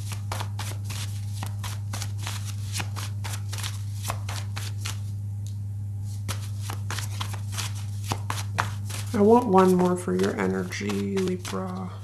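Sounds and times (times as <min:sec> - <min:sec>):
cards being shuffled: 0:00.0 - 0:05.2, 0:06.1 - 0:12.0
steady low hum: 0:00.0 - 0:12.0.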